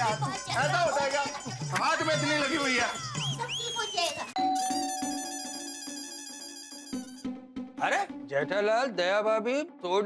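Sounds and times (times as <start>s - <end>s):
electronic doorbell chime: 4.4s - 7.2s.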